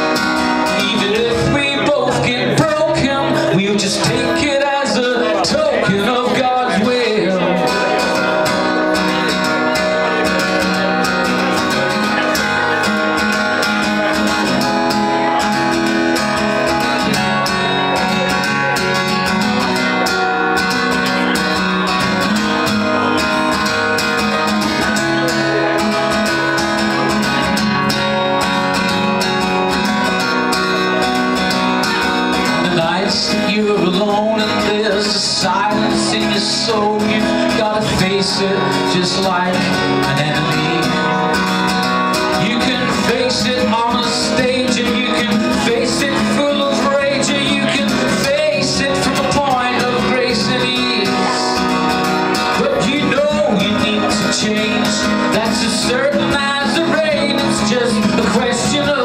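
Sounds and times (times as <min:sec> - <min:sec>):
acoustic guitar strummed: 0:00.0 - 0:59.0.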